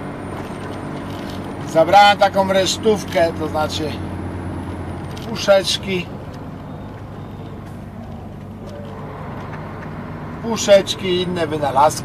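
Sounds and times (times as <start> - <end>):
truck engine hum: 0.0 - 12.0.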